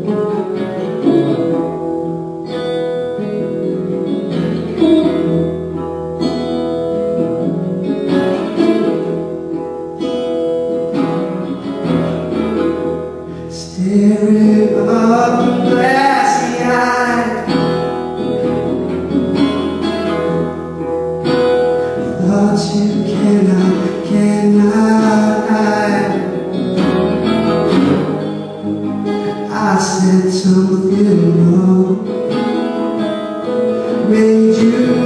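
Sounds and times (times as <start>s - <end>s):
strummed resonator guitar: 0.0s - 35.0s
man singing: 13.4s - 17.8s, 21.8s - 26.6s, 29.3s - 32.6s, 33.8s - 35.0s.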